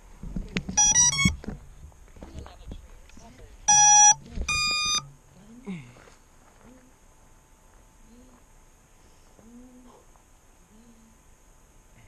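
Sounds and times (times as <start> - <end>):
motor startup beeps: 0.8 - 1.4, 3.7 - 5.1.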